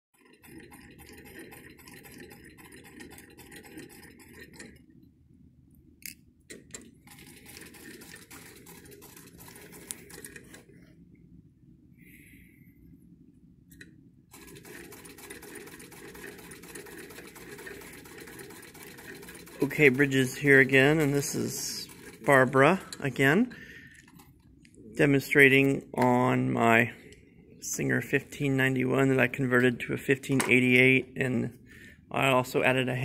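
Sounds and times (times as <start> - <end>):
sewing machine clattering: 0.2 - 4.9, 6.5 - 10.6, 14.3 - 23.4.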